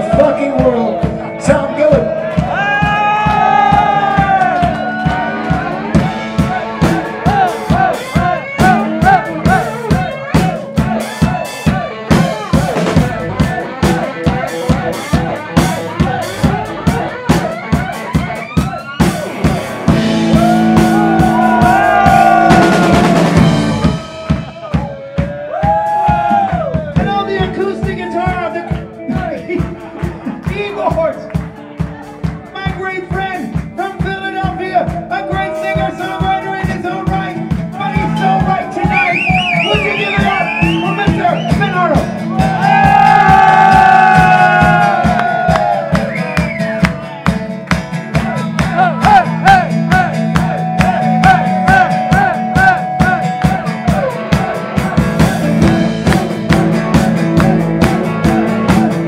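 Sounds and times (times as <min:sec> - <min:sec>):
electric guitar sliding lead: 0:00.0 - 0:25.0, 0:35.2 - 0:59.0
drum kit steady beat: 0:00.0 - 0:59.0.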